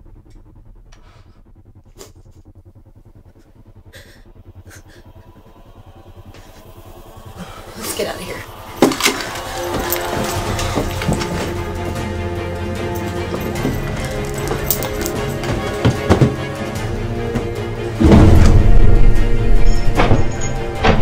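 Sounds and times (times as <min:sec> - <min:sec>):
loud sustained tones: 0:00.0 - 0:21.0
low pulsing drone: 0:00.0 - 0:21.0
sharp stinger hit: 0:17.9 - 0:21.0.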